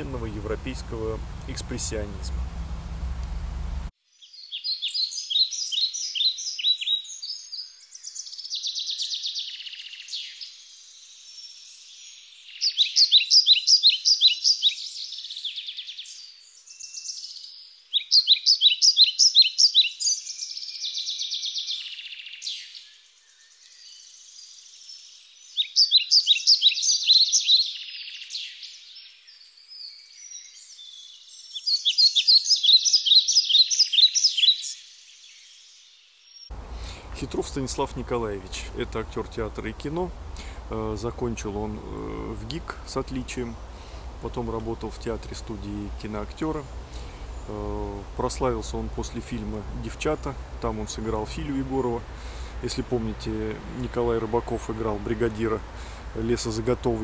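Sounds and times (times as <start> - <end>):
songbird singing: 0.0 - 57.0.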